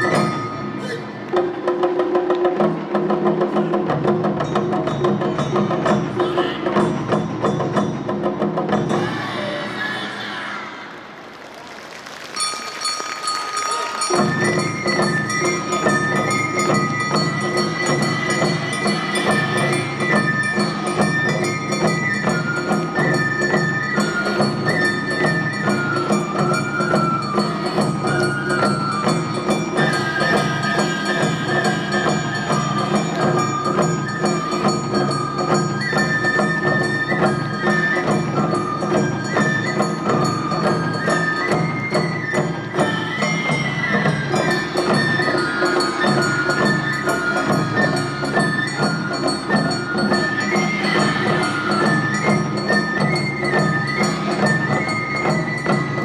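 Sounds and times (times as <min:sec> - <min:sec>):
bamboo flute long high notes: 0:00.0 - 0:01.6, 0:11.6 - 0:56.0
drum band playing: 0:00.0 - 0:09.4, 0:11.4 - 0:56.0.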